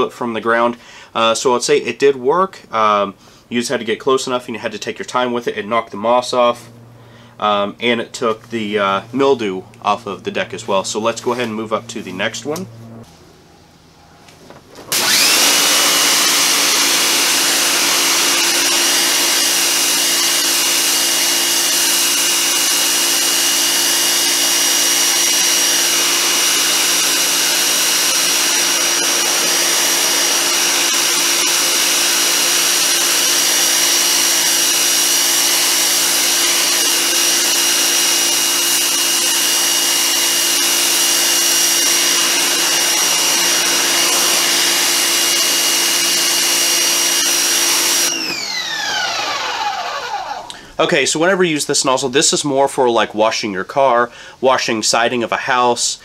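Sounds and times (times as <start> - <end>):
pressure washer motor whine: 14.9 - 50.6.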